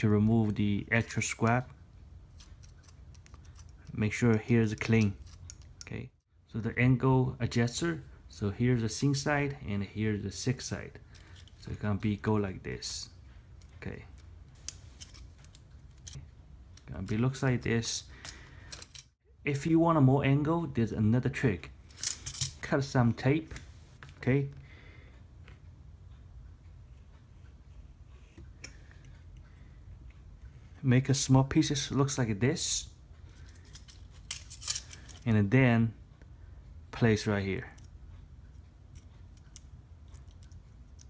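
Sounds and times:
faint clicks of plastic parts: 37.6s - 41.0s.

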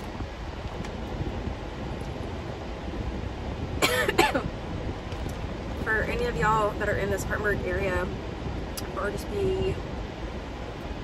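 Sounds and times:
car cabin road rumble: 0.0s - 11.0s
person coughing: 3.8s - 4.5s.

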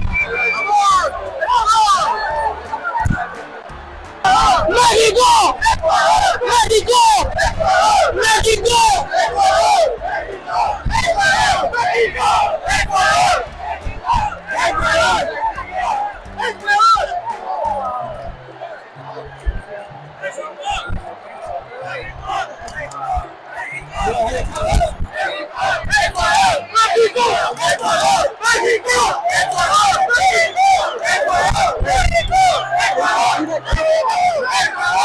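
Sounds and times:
stadium crowd shouting: 0.0s - 35.0s.

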